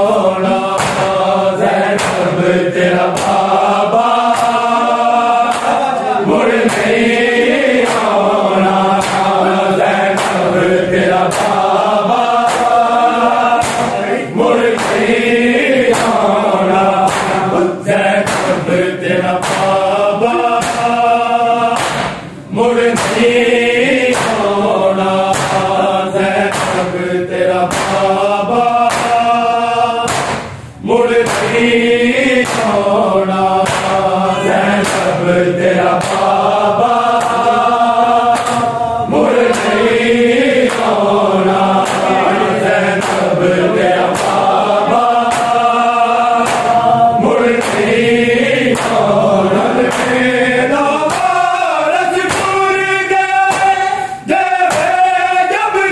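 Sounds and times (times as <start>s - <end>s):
men chanting a lament: 0.0s - 55.9s
hands slapping chests: 0.4s - 17.6s, 18.2s - 19.9s, 20.5s - 21.0s, 21.7s - 23.4s, 24.0s - 24.6s, 25.2s - 27.0s, 27.6s - 29.4s, 30.0s - 48.0s, 48.6s - 50.3s, 51.1s - 51.4s, 52.3s - 52.6s, 54.7s - 55.0s.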